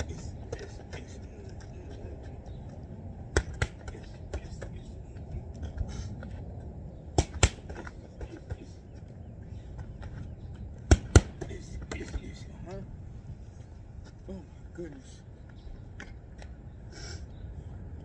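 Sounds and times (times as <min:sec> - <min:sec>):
boxing gloves hitting focus mitts: 0:03.3 - 0:04.5, 0:10.9 - 0:12.2.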